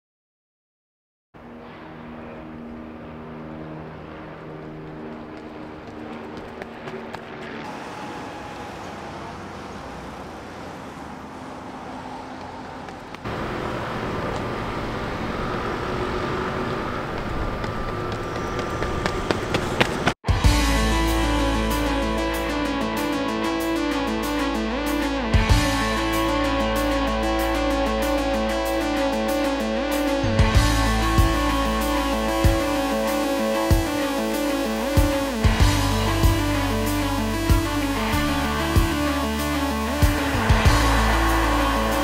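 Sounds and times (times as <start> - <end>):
road traffic: 1.4 - 42.0
background music: 20.2 - 42.0.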